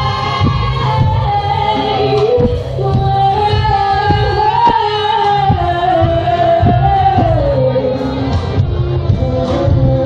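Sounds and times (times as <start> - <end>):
drum hits: 0.0 - 1.5, 2.4 - 4.8, 5.4 - 7.4
backing music with bass: 0.0 - 10.0.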